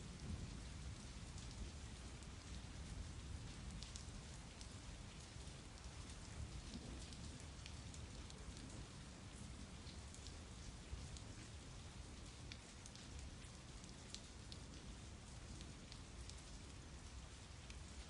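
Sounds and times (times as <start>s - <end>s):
faint rainfall: 0.0s - 18.0s
raindrops ticking: 2.2s - 16.4s.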